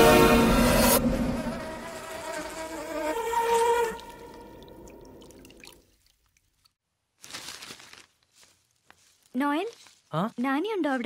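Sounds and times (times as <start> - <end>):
sustained orchestral chord: 0.0 - 1.8
insect buzzing: 1.0 - 4.9.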